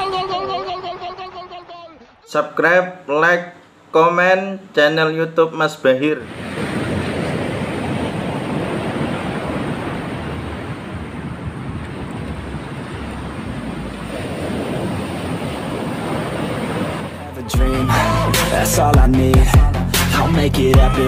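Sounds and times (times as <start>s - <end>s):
ocean surf breaking on beach: 6.2s - 17.4s
loud music with heavy bass beat: 17.5s - 21.0s.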